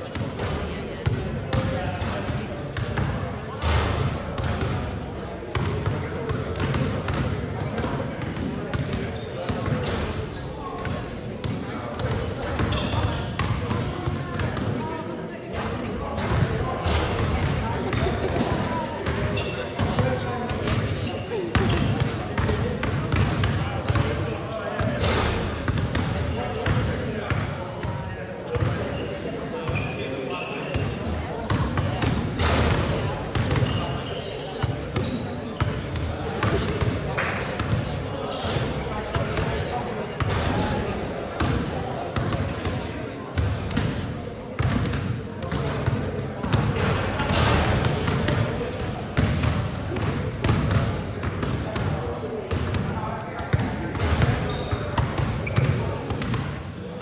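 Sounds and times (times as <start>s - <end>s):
basketballs bouncing on hard floor: 5.5s - 11.6s, 12.6s - 15.0s, 31.5s - 33.8s, 44.6s - 48.4s, 49.2s - 51.9s, 53.6s - 56.4s.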